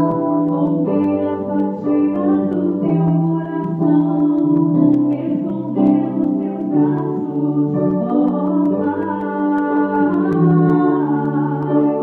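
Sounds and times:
piano accompaniment: 0.0 - 12.0
woman singing gospel song: 0.0 - 12.0.

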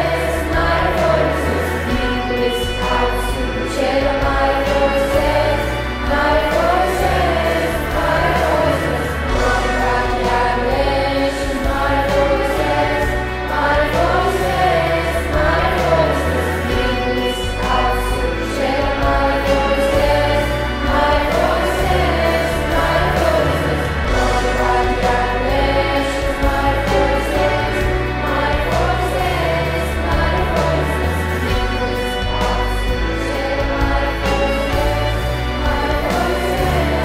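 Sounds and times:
choir singing held chords: 0.0 - 37.0
slow bass line: 0.0 - 37.0.

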